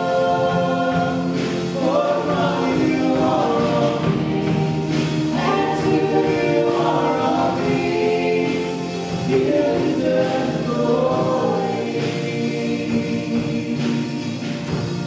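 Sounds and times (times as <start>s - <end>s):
worship band playing: 0.0s - 15.0s.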